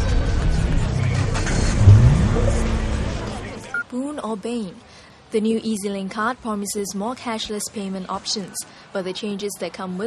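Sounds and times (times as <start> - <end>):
deep rumble: 1.4 - 3.7
news title music: 1.6 - 3.8
rising swoop into held tone: 1.7 - 3.7.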